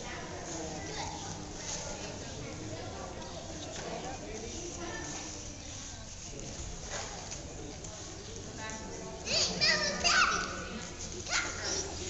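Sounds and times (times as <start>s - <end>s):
background chatter: 0.0s - 12.0s
children shouting and squealing: 9.3s - 12.0s.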